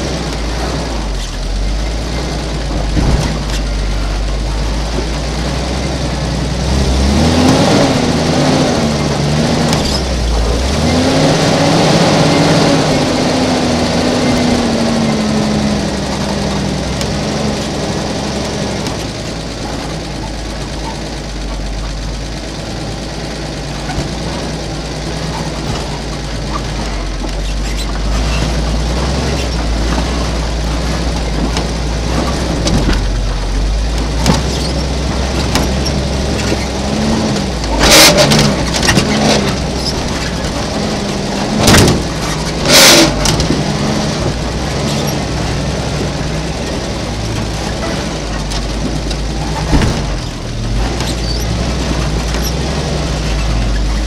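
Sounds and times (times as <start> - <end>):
truck engine revving: 0.0 - 54.0.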